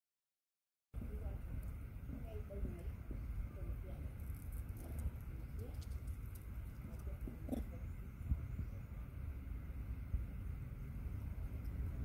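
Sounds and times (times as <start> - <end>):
faint voices talking: 1.0 - 9.6
low wind rumble on microphone: 1.0 - 12.0.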